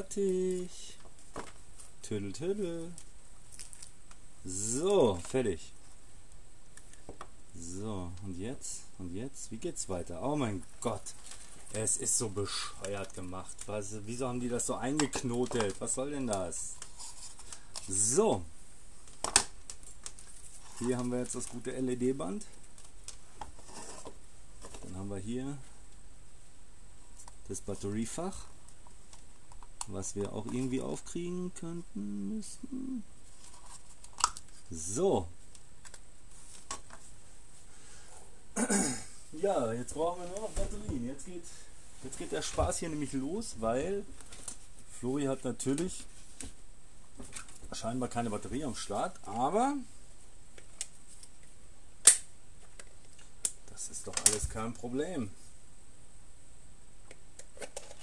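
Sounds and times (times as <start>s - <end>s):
person speaking: 0.0s - 1.1s, 2.0s - 3.1s, 4.4s - 5.8s, 7.5s - 17.1s, 17.8s - 18.5s, 20.7s - 22.6s, 24.7s - 25.7s, 27.4s - 28.6s, 29.8s - 33.1s, 34.7s - 35.4s, 39.3s - 44.2s, 44.9s - 46.1s, 47.2s - 50.0s
soft rustle: 8.2s - 26.0s, 32.2s - 35.5s, 36.2s - 38.4s, 39.2s - 50.3s.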